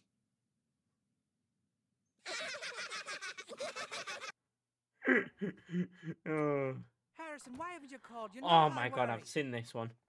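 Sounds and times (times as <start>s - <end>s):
cartoon boys laughing: 2.2s - 4.4s, 5.0s - 6.4s.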